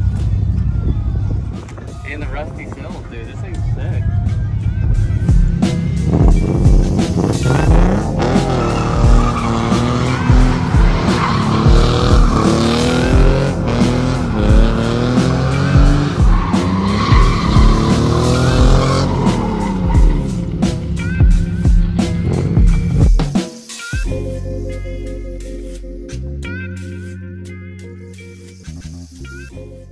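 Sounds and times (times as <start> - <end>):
car engine revving: 0.0 - 23.2
music with steady beat: 2.8 - 29.9
tires squealing on pavement: 5.7 - 21.1.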